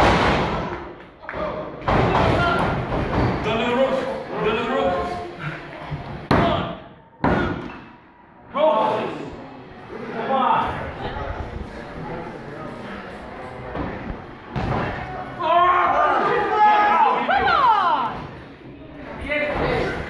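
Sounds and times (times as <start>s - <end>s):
voices shouting: 15.4s - 18.2s.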